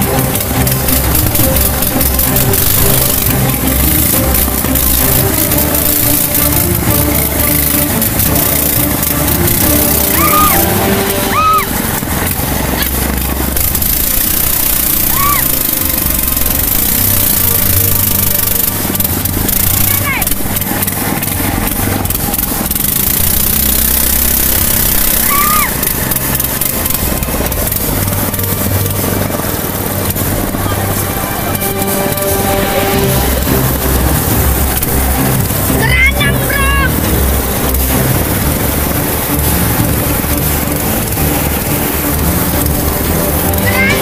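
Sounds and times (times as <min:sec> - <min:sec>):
background music: 0:00.0 - 0:44.0
small boat engine drone: 0:00.0 - 0:44.0
whitewater rapids rushing: 0:00.0 - 0:44.0.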